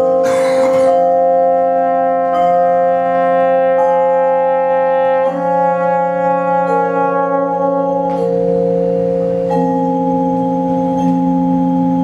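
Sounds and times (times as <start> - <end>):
french horn sustained chords: 0.0 - 10.5.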